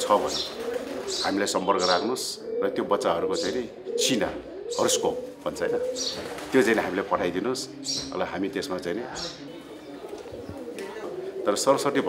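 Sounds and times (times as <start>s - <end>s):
pigeons cooing softly: 0.0s - 12.0s.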